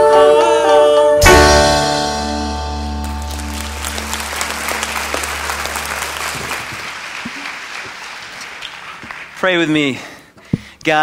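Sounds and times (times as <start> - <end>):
congregation applauding: 2.9 - 10.1.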